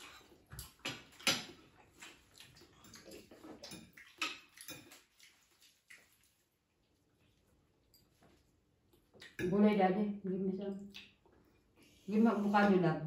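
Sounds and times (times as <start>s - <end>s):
cutlery clicking against plates: 0.0s - 2.2s, 3.6s - 5.1s.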